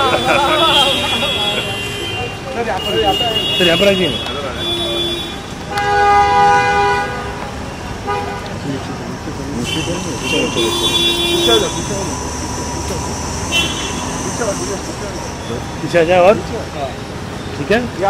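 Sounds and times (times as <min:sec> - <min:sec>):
vehicle horns honking: 0:00.0 - 0:08.8, 0:09.5 - 0:16.2.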